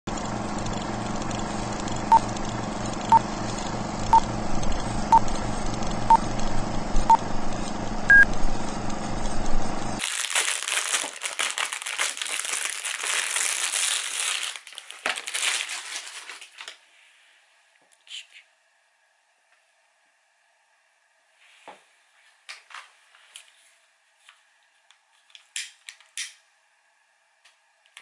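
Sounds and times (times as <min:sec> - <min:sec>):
plastic wrapping crinkling: 0:10.0 - 0:16.8.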